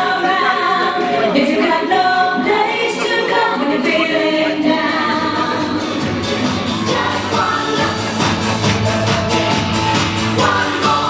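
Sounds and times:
voices singing in harmony: 0:00.0 - 0:11.0.

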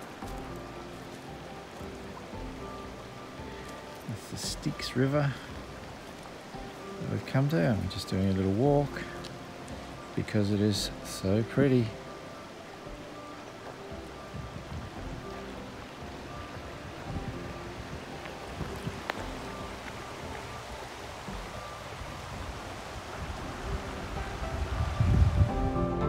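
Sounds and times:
river flowing over pebbles: 0:00.0 - 0:26.0
soft background music: 0:00.0 - 0:26.0
wind rumble on microphone: 0:13.9 - 0:26.0.

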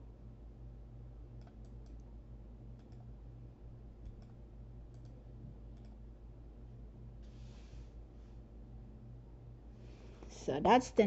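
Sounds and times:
steady low hum: 0:00.0 - 0:11.0
computer mouse clicks: 0:01.4 - 0:02.1, 0:02.8 - 0:03.1, 0:04.0 - 0:06.0.

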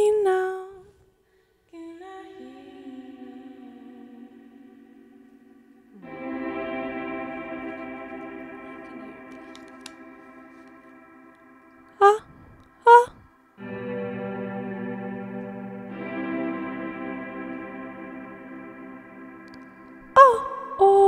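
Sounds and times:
electronic keyboard chords: 0:06.0 - 0:21.0.

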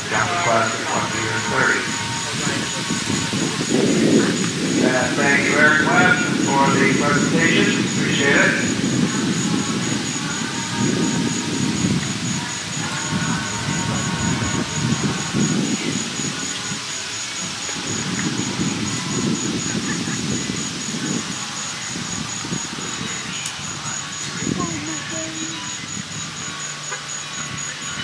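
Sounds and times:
faint high whine: 0:00.0 - 0:28.0
wind buffeting microphone: 0:00.0 - 0:28.0.

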